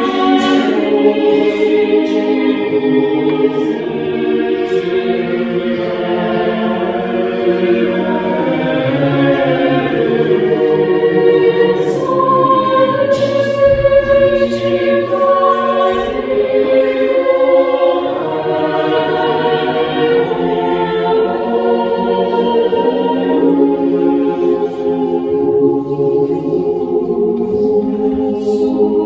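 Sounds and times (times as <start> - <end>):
mixed choir singing a cappella: 0.0 - 29.0.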